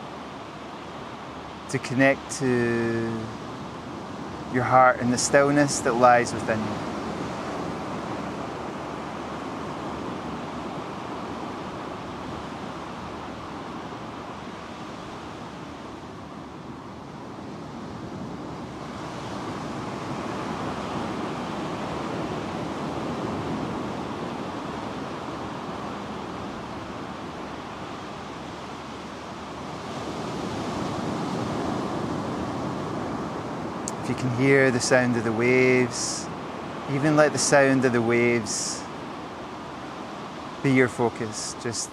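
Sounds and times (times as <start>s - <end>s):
ocean surf breaking on sand: 0.0s - 41.9s.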